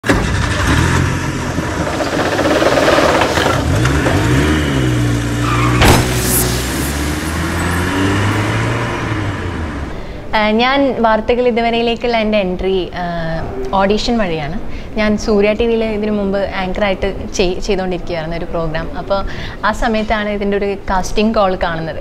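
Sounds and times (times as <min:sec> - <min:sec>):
engine revving: 0:00.2 - 0:10.3
sharp hit: 0:05.4 - 0:09.9
dense noisy layer: 0:05.4 - 0:11.6.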